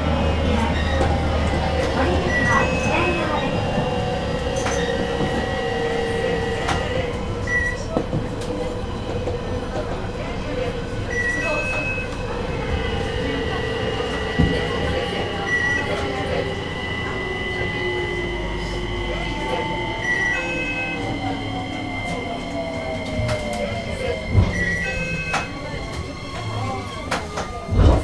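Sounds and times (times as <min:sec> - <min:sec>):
electric train motor whine: 0:00.0 - 0:28.0
train wheel rumble: 0:00.0 - 0:28.0
short beeps: 0:02.0 - 0:03.7, 0:06.1 - 0:08.0, 0:11.1 - 0:22.2, 0:24.5 - 0:25.6.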